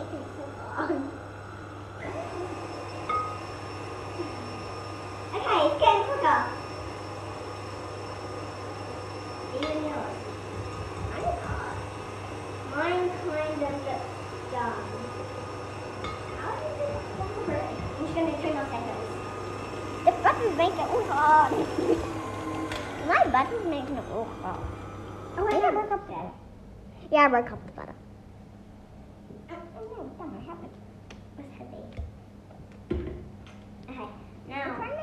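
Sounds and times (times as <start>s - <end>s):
stand mixer humming: 0.0s - 26.1s
voices: 2.0s - 7.0s, 9.4s - 26.4s.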